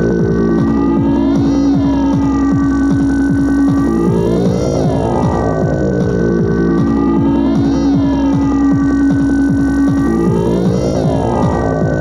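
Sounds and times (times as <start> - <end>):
steady low pulse: 0.0 - 12.0.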